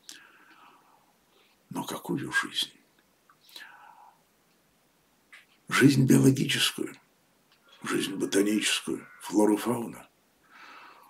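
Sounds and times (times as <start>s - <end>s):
man breathing in: 10.4s - 11.0s.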